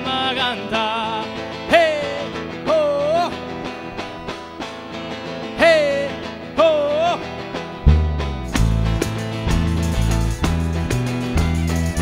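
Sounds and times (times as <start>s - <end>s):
strummed guitar: 0.0s - 12.0s
sliding lead melody: 7.6s - 12.0s
hand percussion rhythm: 7.8s - 12.0s
heavy bass line: 7.8s - 12.0s.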